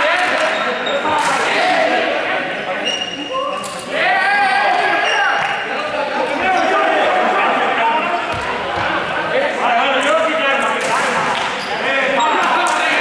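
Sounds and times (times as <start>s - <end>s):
young people talking and calling out: 0.0s - 13.0s
high-pitched squeaks: 2.8s - 3.9s.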